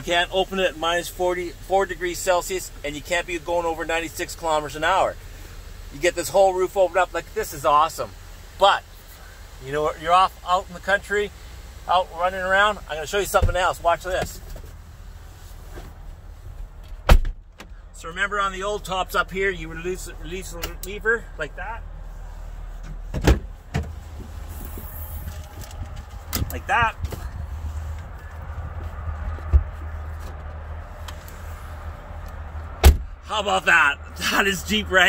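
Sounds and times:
steady low rumble: 0:11.4 - 0:35.0
car door thump: 0:16.9 - 0:17.8, 0:22.8 - 0:24.0, 0:32.8 - 0:33.2.

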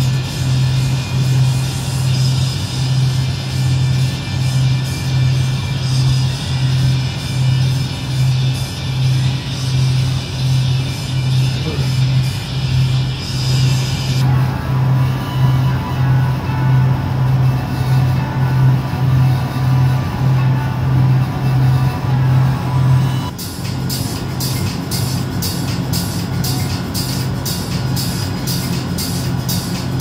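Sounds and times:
fast hi-hat ticking: 0:00.0 - 0:14.3, 0:23.3 - 0:30.0
background music with pulsing bass: 0:00.0 - 0:30.0.

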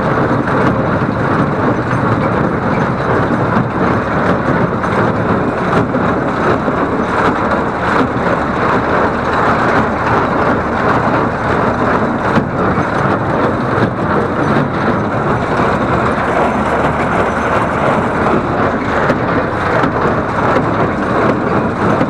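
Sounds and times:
tractor engine: 0:00.0 - 0:22.0
baler pickup and plunger working: 0:00.1 - 0:22.0.

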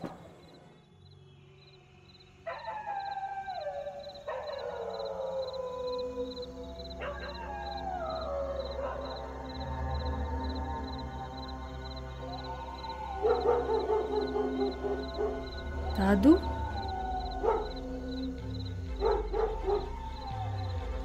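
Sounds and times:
dog howling: 0:02.5 - 0:21.0.

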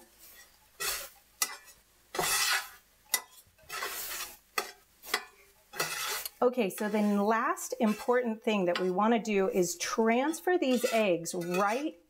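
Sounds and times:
spatula scraping a skillet: 0:00.0 - 0:12.0.

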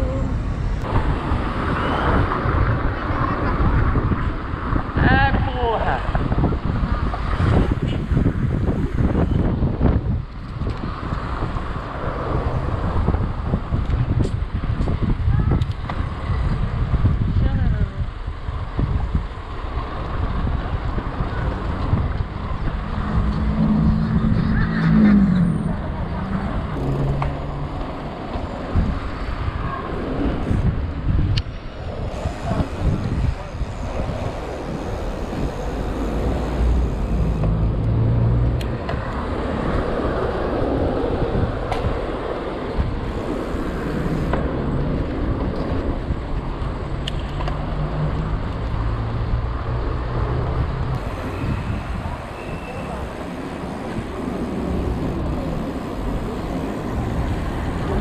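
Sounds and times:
vehicle engines passing: 0:00.0 - 0:58.0
wind on microphone: 0:00.0 - 0:58.0
car traffic passing: 0:18.2 - 0:58.0.

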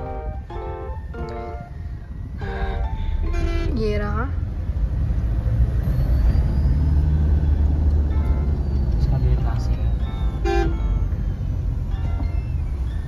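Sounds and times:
car engine rumble: 0:00.0 - 0:13.0
road noise: 0:00.0 - 0:13.0
vehicle horn honks: 0:02.4 - 0:04.0, 0:10.4 - 0:11.0.

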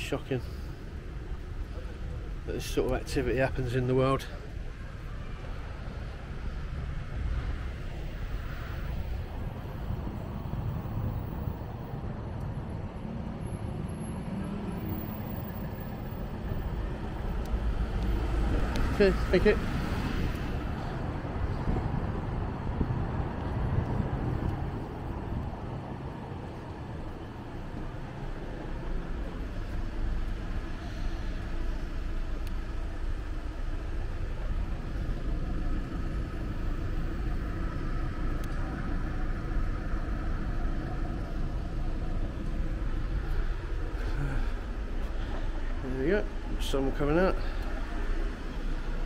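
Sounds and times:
passing road vehicles: 0:00.0 - 0:49.0.

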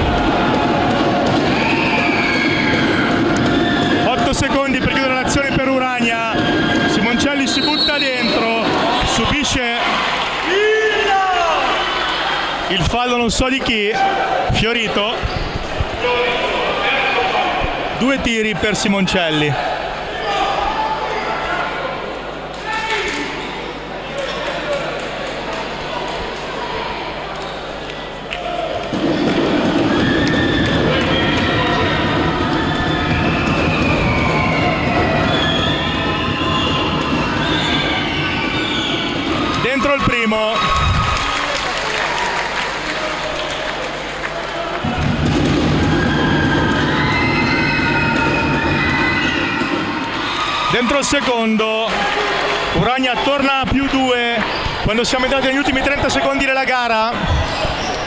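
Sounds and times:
crowd voices: 0:00.0 - 0:58.0.

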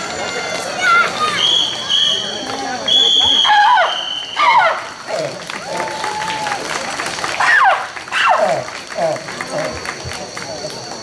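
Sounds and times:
whoops and shouted calls: 0:01.2 - 0:04.9, 0:05.6 - 0:06.7
audience applauding: 0:04.6 - 0:11.0.

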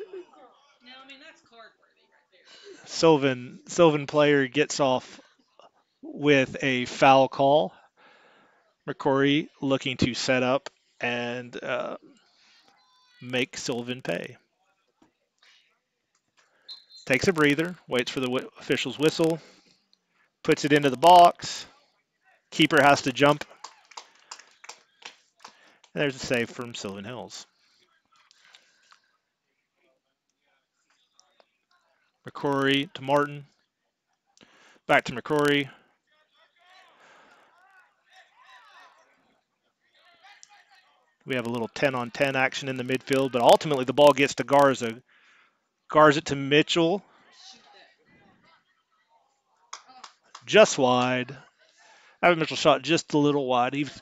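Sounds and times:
faint microphone background noise: 0:00.0 - 0:14.4, 0:16.4 - 0:21.8, 0:22.5 - 0:29.0, 0:49.7 - 0:54.0.

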